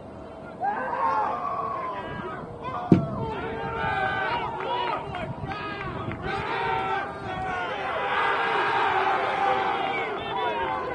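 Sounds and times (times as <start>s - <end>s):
people shouting: 0.6s - 10.9s.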